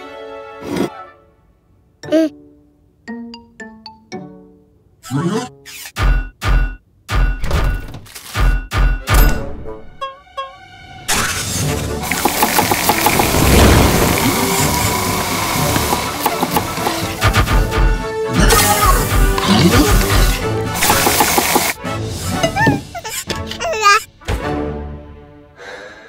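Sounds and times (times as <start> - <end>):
rapid knocking effects: 12.0 - 17.9, 20.8 - 21.8.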